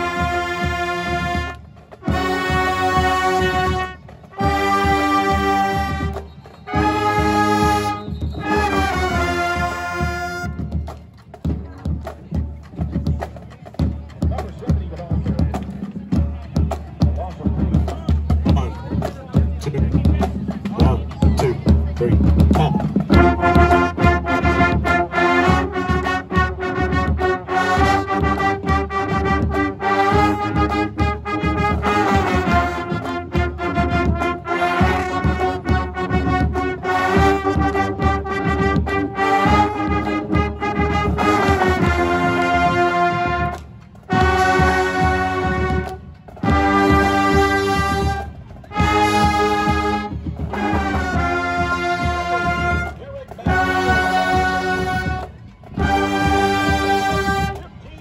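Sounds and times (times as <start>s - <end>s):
brass section chords: 0.0s - 10.9s, 20.8s - 57.8s
marching drums rhythmic hits: 0.0s - 58.0s.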